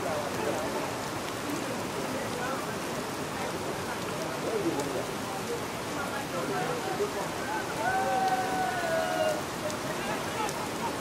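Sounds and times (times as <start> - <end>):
faint voices: 0.0 - 11.0
heavy rain: 0.0 - 11.0.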